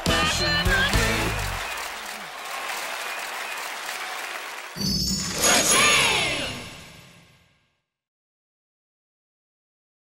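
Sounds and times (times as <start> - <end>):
crowd applauding: 0.0 - 6.7.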